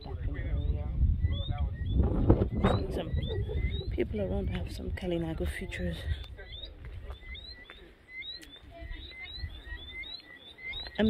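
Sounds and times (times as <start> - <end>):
small animals chirping: 0.5 - 4.7, 5.7 - 11.0.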